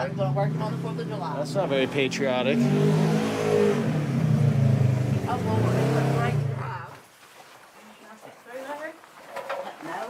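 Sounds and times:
off-road vehicle engine revving: 0:00.0 - 0:06.9
woman's voice: 0:05.2 - 0:07.0, 0:07.8 - 0:10.0.

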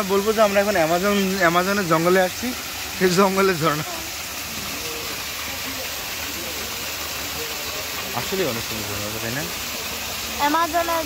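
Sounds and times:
water pouring down waterfall: 0:00.0 - 0:11.0.

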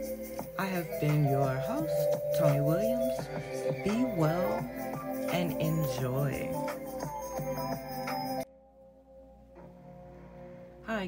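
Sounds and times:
soft music of held notes: 0:00.0 - 0:11.0.

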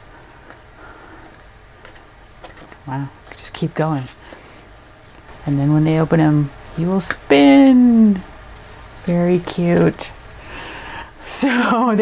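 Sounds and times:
cardstock ticking and rustling: 0:00.0 - 0:05.3.

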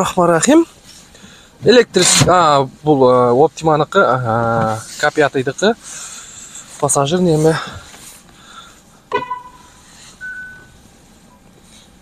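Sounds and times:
faint short blips: 0:09.1 - 0:10.7
short beeping tones: 0:09.1 - 0:10.8.

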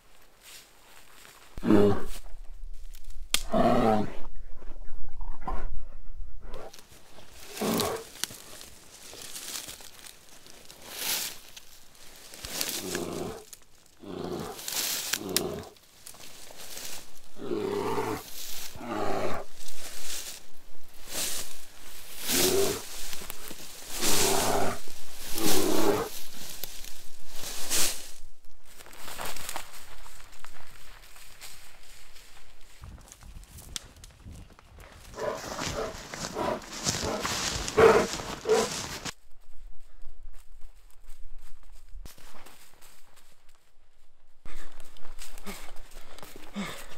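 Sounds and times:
bear growling: 0:01.6 - 0:02.2, 0:03.4 - 0:04.3, 0:05.2 - 0:08.2, 0:12.5 - 0:15.8, 0:16.8 - 0:19.6, 0:22.1 - 0:26.3, 0:35.1 - 0:39.1.

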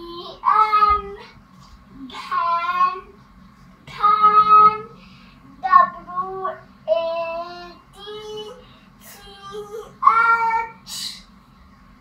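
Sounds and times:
girl singing: 0:00.0 - 0:01.3, 0:02.0 - 0:03.2, 0:03.8 - 0:05.0, 0:05.6 - 0:11.2.

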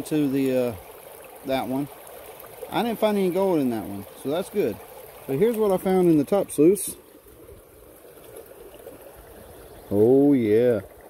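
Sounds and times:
faint trickle of running water: 0:00.0 - 0:11.0.

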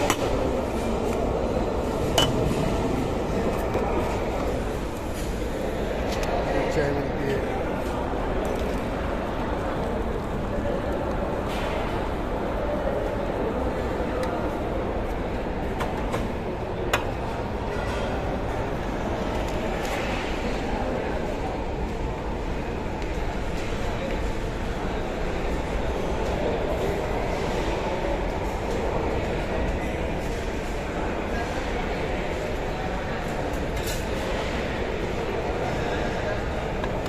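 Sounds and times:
dining hall background rumble: 0:00.0 - 0:37.0
general chatter: 0:00.0 - 0:37.0
kitchen noise: 0:01.8 - 0:03.1
steel tableware clinking: 0:02.2 - 0:02.4.

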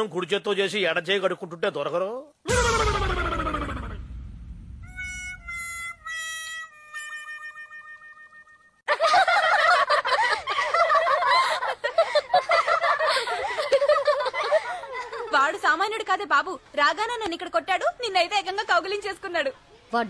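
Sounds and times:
dense warbling clamour: 0:02.5 - 0:05.8
falling swoop: 0:02.5 - 0:06.0
descending held notes: 0:02.5 - 0:06.2.

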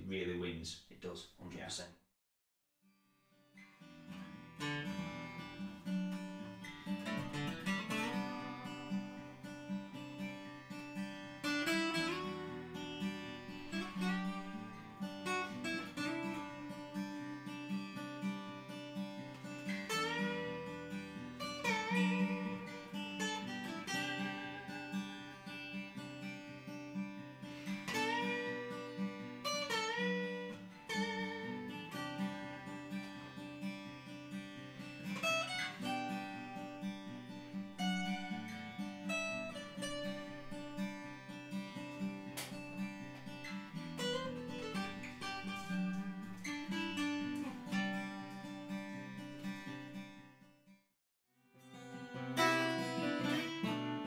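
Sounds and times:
acoustic guitar melody with bends: 0:03.4 - 0:50.8, 0:51.4 - 0:54.0
acoustic guitar chords: 0:03.6 - 0:50.8, 0:51.5 - 0:54.0.

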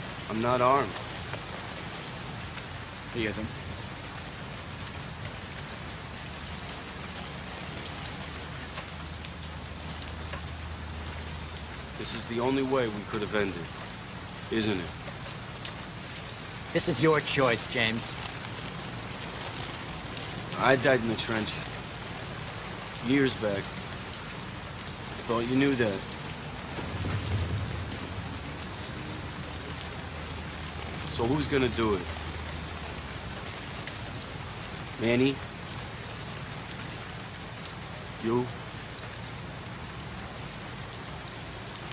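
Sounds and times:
heavy rain hissing: 0:00.0 - 0:41.9
low steady hum: 0:21.8 - 0:38.0.

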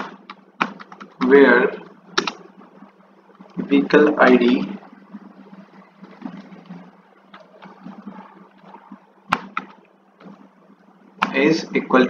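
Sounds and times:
computer keyboard keystrokes: 0:00.0 - 0:01.3
sharp keyboard clicks: 0:00.0 - 0:01.3, 0:02.2 - 0:02.4, 0:09.3 - 0:09.8
low steady hum: 0:00.0 - 0:12.0.

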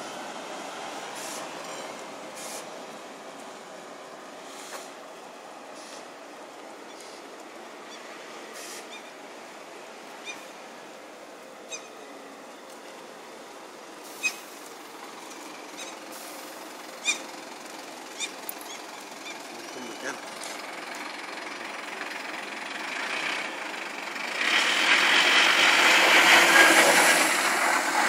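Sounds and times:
buses and traffic hum: 0:00.0 - 0:28.0.

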